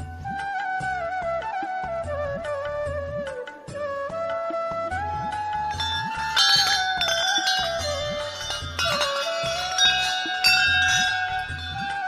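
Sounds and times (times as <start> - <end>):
brass temple bells ringing: 5.7 - 12.0.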